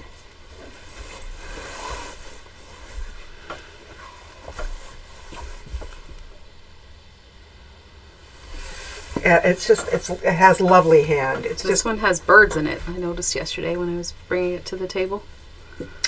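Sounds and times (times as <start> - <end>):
cloth rustling: 0.0 - 6.3, 8.3 - 11.8
low steady hum: 0.0 - 16.0.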